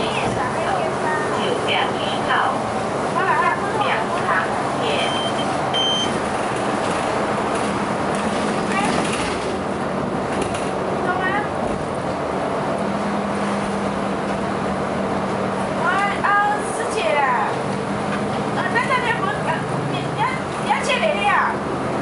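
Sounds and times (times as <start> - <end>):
bus engine and road noise: 0.0 - 22.0.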